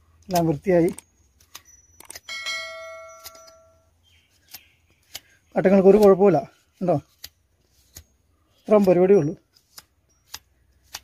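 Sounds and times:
notification bell ding: 1.7s - 3.8s.

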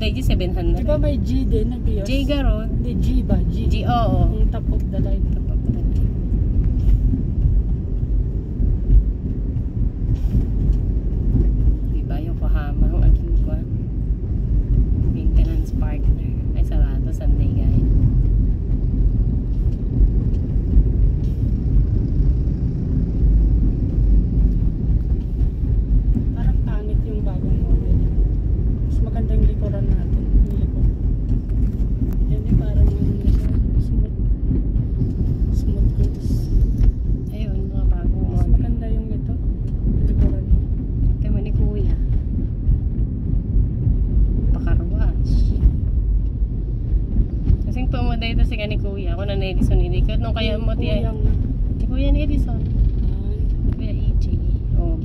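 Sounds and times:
car engine and tyre rumble: 0.0s - 55.0s.

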